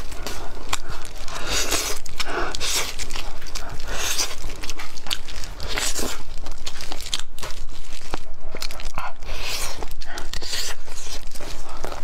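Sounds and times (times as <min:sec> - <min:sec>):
chewing and tearing meat: 0:00.0 - 0:12.0.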